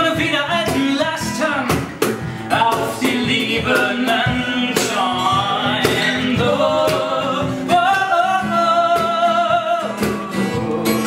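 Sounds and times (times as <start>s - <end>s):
cajon beats: 0.0s - 11.0s
man singing: 0.0s - 11.0s
strummed acoustic guitars: 0.0s - 11.0s.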